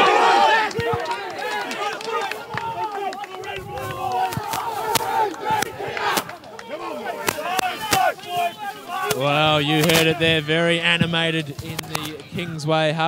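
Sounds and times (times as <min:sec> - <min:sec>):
group shouting: 0:00.0 - 0:09.4
sharp claps: 0:00.6 - 0:08.2.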